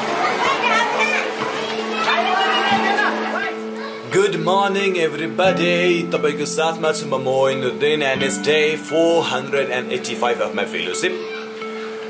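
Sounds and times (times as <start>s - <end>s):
children chattering and calling out: 0.0s - 5.1s, 10.7s - 12.0s.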